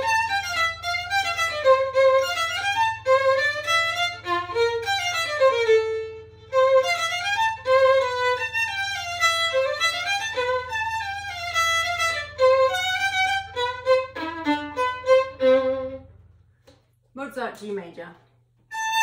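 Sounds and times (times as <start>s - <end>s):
solo violin playing: 0.0s - 16.4s, 18.7s - 19.0s.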